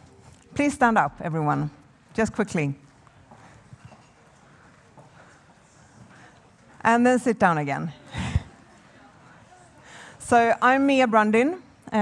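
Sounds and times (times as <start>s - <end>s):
audience rustling and shuffling: 0.0s - 10.5s.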